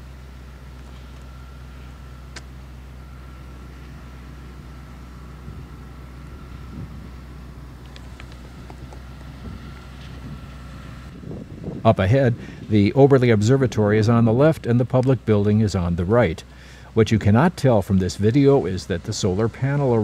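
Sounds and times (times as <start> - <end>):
faint steady hum: 0.0 - 20.0
small click: 2.3 - 2.5
wind rumble on microphone: 6.3 - 7.3, 8.4 - 14.2
man narrating: 11.8 - 20.0.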